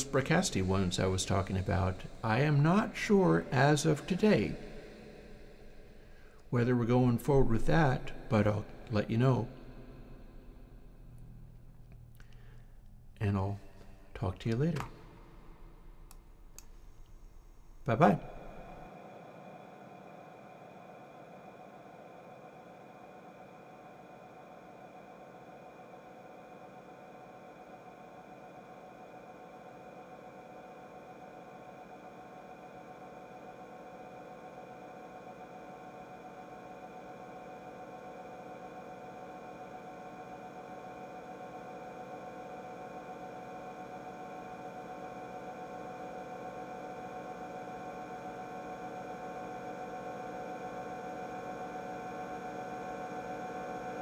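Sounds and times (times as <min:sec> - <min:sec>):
reverb drone of ringing tones: 0:00.0 - 0:11.7.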